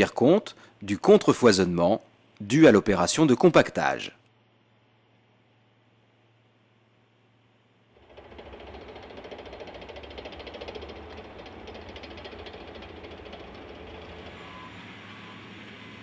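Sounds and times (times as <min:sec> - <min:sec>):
fast even rattle: 0:08.0 - 0:14.5
compaction roller engine and drum: 0:08.0 - 0:16.0.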